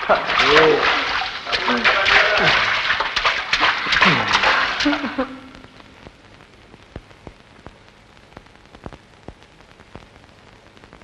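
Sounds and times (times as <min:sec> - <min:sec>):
voice: 0:00.0 - 0:02.8, 0:03.8 - 0:05.8
splashing: 0:00.0 - 0:05.6
film soundtrack hiss: 0:00.0 - 0:11.0
sharp clicks and pops: 0:02.8 - 0:11.0.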